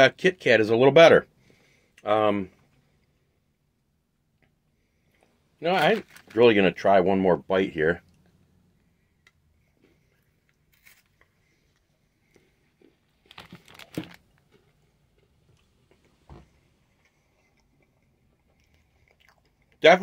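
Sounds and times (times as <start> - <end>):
crunching wafer bar: 10.1 - 11.3, 12.4 - 15.3
chewing crunches: 16.8 - 19.8.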